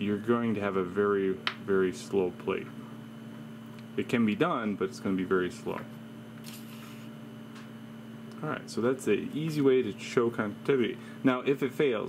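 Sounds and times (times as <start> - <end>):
steady low hum: 0.0 - 12.0
person speaking: 8.3 - 12.0.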